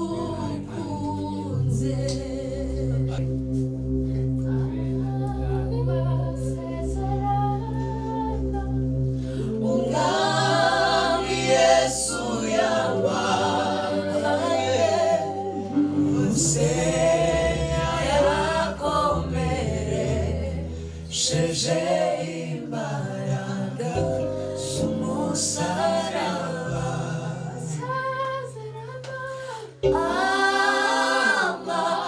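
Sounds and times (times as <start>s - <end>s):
group singing gospel in harmony: 0.0s - 4.3s, 5.0s - 32.0s
low sustained chord: 1.6s - 21.4s.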